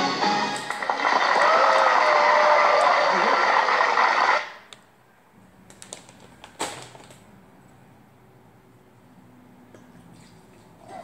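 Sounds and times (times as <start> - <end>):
voice from tv clip: 2.8 - 4.5.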